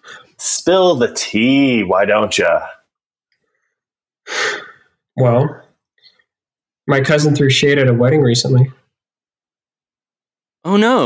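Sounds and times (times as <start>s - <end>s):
breath: 3.4s - 5.0s.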